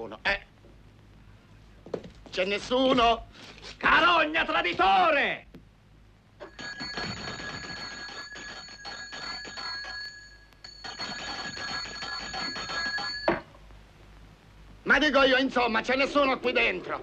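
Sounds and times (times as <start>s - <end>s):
bell ringing continuously: 6.4s - 13.4s.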